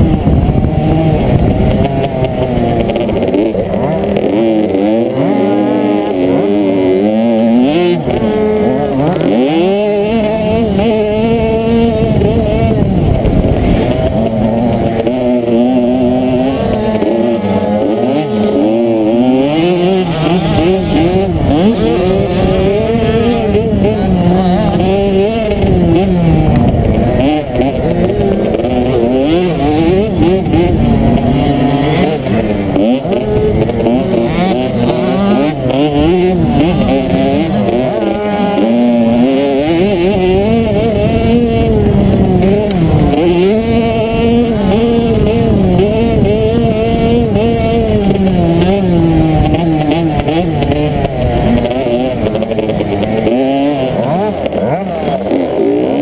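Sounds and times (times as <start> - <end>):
dirt bike engine revving: 0.0 - 56.0
other dirt bikes racing: 0.0 - 56.0.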